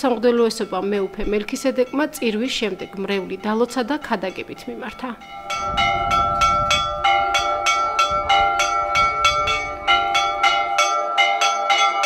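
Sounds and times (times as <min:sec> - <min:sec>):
church bells pealing: 0:00.0 - 0:12.0.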